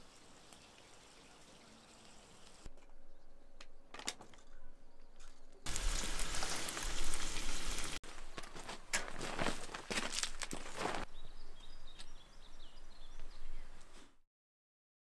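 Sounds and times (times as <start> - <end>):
faint bird chirps: 4.4 - 5.6
ground sheet rustling on gravel: 5.7 - 11.1.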